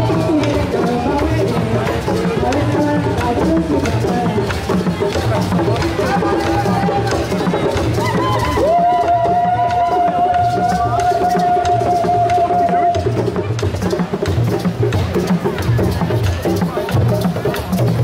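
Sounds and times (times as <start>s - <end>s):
group singing or chanting: 0.0s - 13.2s
hand drums: 0.0s - 18.0s.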